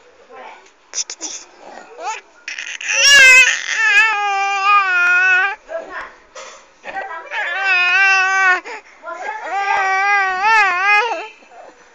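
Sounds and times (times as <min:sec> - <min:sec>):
infant crying: 0:02.0 - 0:05.6, 0:07.3 - 0:11.7.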